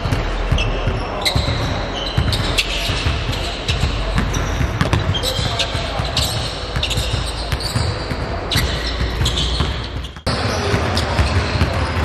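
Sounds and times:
basketball bouncing on wooden floor: 0:00.0 - 0:12.0
sneakers squeaking on court: 0:00.0 - 0:12.0.

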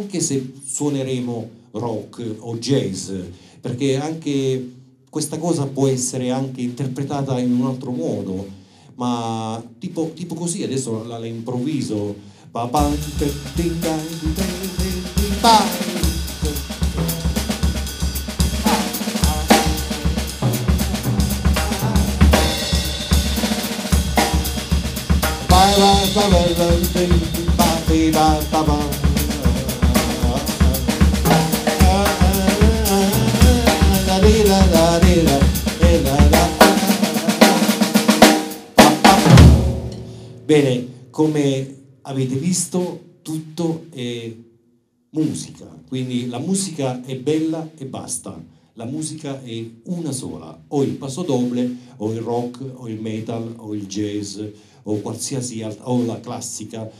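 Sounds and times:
loud drum hits: 0:12.8 - 0:40.5
drum kit groove: 0:12.8 - 0:40.7.

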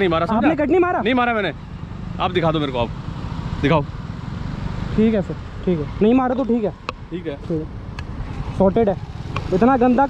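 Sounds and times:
men talking loudly: 0:00.0 - 0:04.0, 0:04.9 - 0:07.8
road traffic noise: 0:00.0 - 0:10.0.

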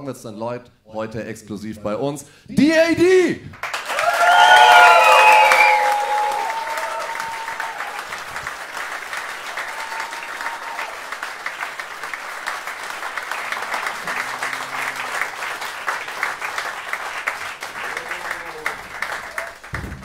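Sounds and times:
audience clapping: 0:03.5 - 0:20.0
shouts and whoops: 0:03.8 - 0:08.1, 0:09.5 - 0:11.0.

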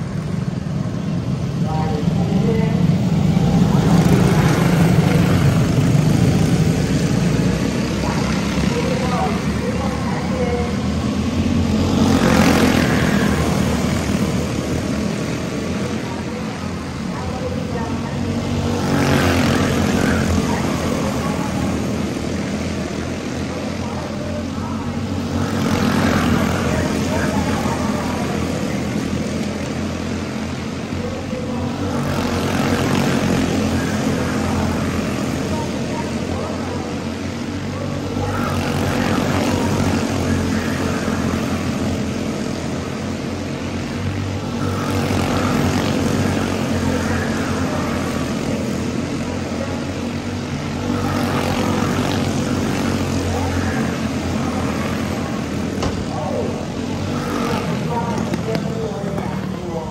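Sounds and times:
small race car engines buzzing: 0:00.0 - 0:59.9.

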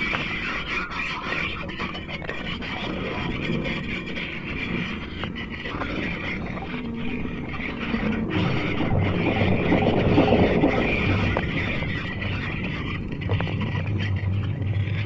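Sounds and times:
electronic noise drone: 0:00.0 - 0:15.0
faint crackles: 0:00.0 - 0:15.0.

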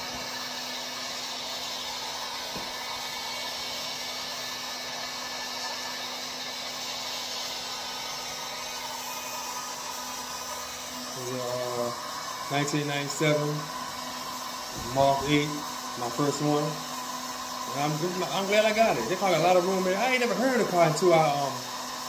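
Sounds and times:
heat gun blowing: 0:00.0 - 0:22.0.

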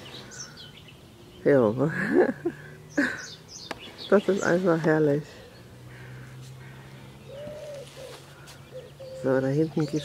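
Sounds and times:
pigeon cooing: 0:07.2 - 0:10.0.

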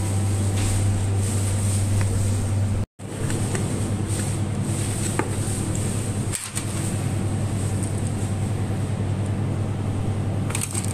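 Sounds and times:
low mechanical hum: 0:00.0 - 0:10.9.

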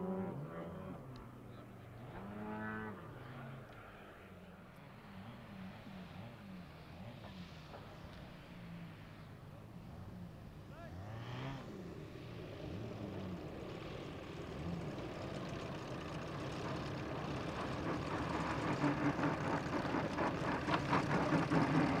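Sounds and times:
model airplane engines running: 0:00.0 - 0:22.0.

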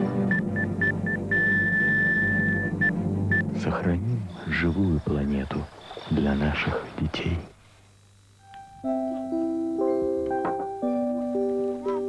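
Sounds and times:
low musical drone: 0:00.0 - 0:06.7
heart monitor flatline tone: 0:00.2 - 0:03.7
heart monitor beep: 0:00.3 - 0:03.5.

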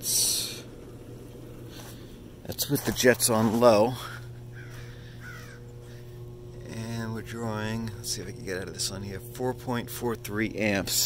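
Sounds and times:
hot tub pump humming: 0:00.0 - 0:11.0
drawn-out calls: 0:04.5 - 0:05.8.

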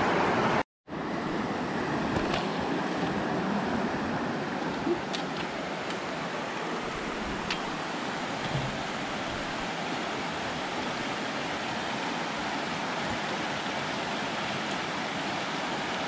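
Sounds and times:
rocky creek flowing: 0:00.1 - 0:16.0.

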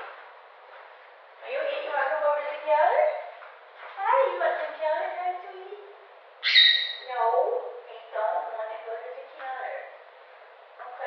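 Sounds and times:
parrot calling: 0:06.4 - 0:07.2.

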